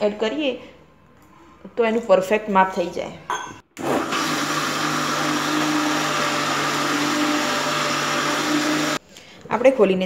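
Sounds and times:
mixer grinder running: 0:03.8 - 0:09.0.

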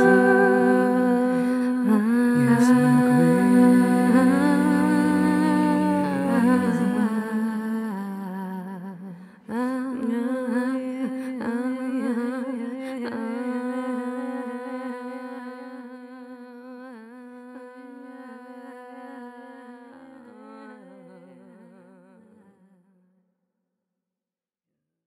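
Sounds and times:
person humming: 0:00.0 - 0:07.6.

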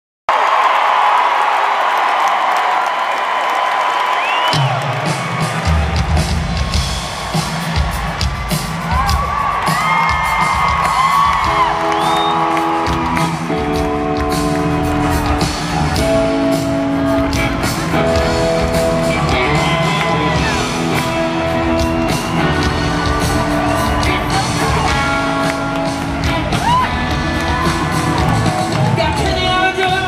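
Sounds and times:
crowd cheering and whooping: 0:00.3 - 0:30.0
drum kit and bass groove: 0:04.6 - 0:30.0.

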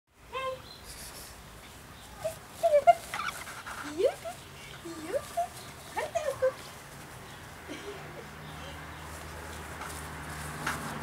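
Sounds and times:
dog yipping and whining: 0:02.6 - 0:03.5.

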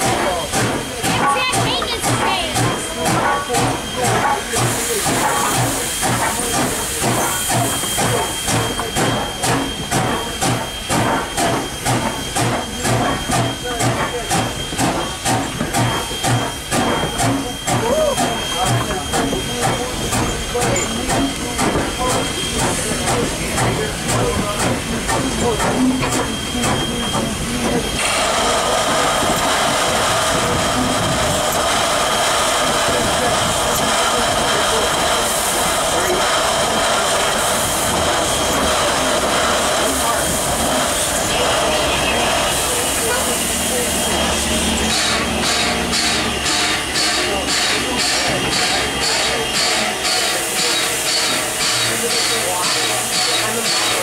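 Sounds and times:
steam air pump panting: 0:00.0 - 0:41.7, 0:42.5 - 0:54.0
steam hissing: 0:00.0 - 0:54.0.

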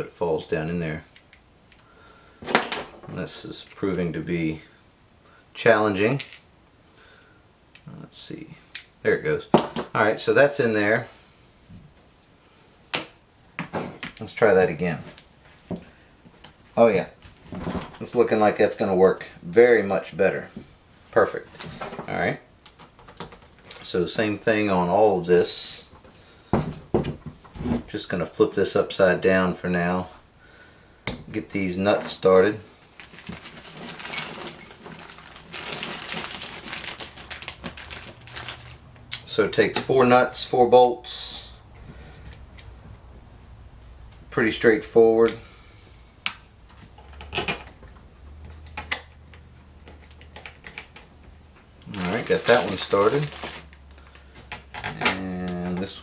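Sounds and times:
nuts and bolts clinking: 0:02.4 - 0:03.9, 0:09.5 - 0:10.1, 0:33.2 - 0:37.0, 0:46.2 - 0:56.0.

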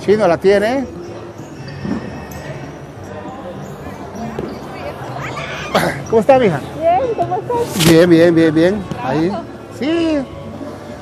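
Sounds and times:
voices in background: 0:00.0 - 0:11.0.

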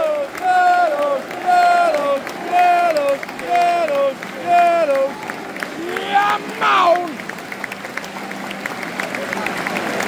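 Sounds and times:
crowd chanting: 0:00.0 - 0:07.2
hand-clapping: 0:00.0 - 0:10.0.

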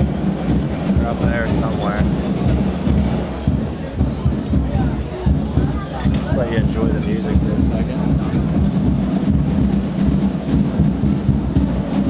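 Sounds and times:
distant marching band drums: 0:00.0 - 0:12.0.

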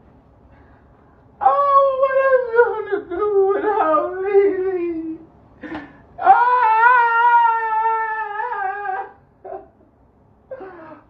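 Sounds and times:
man wailing: 0:06.2 - 0:09.7.

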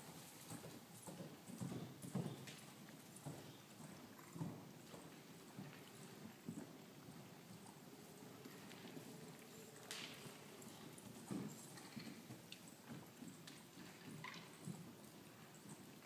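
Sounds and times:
horse hoofbeats on sand: 0:00.0 - 0:16.0.

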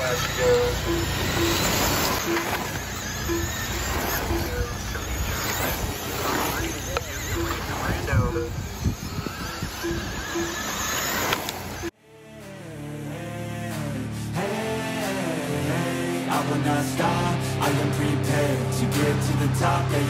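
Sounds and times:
short beeps: 0:00.0 - 0:09.2
model race car motors whining: 0:00.0 - 0:11.9
voices: 0:00.0 - 0:20.0.

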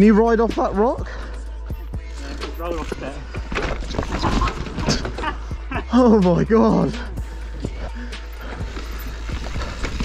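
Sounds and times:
mountain bike rattling over rocks: 0:02.6 - 0:05.2, 0:08.6 - 0:10.0.

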